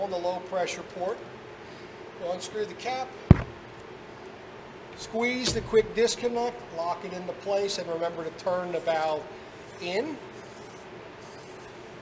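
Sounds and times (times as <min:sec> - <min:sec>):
faint background hum: 0:00.0 - 0:12.0
short sharp thump: 0:03.3 - 0:03.6, 0:05.4 - 0:06.0.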